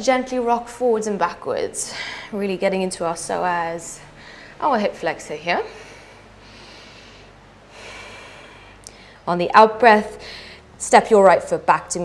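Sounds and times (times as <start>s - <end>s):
woman breathing: 1.8s - 2.4s, 3.9s - 4.6s, 5.6s - 9.3s, 10.1s - 10.8s.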